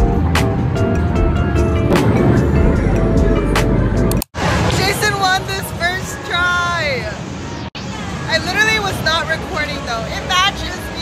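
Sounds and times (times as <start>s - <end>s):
arcade background noise: 0.0s - 11.0s.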